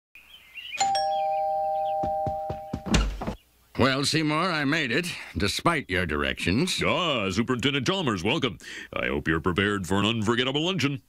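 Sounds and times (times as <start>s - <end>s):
two-tone doorbell chime: 0.8s - 2.9s
low thump: 2.4s - 3.4s.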